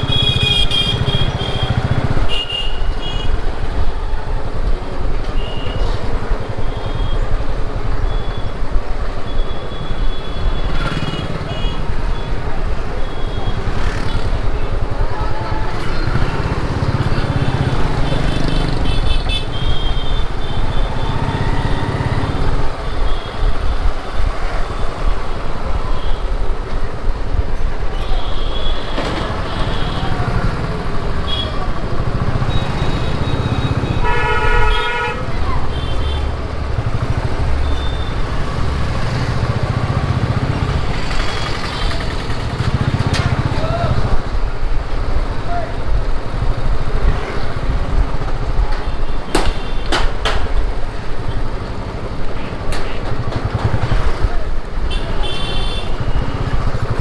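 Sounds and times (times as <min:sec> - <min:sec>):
motorcycle engines in traffic: 0:00.0 - 0:57.0.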